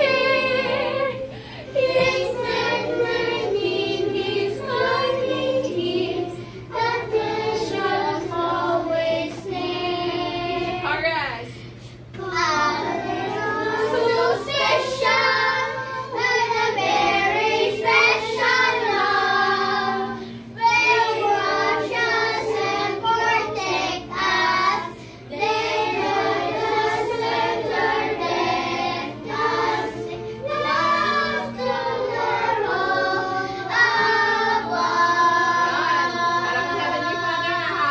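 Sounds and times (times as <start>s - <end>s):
children singing together: 0.0s - 10.8s, 12.2s - 37.9s.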